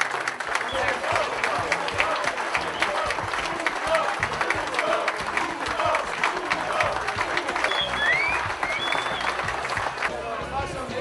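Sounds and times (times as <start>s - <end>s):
crowd applauding: 0.0s - 10.9s.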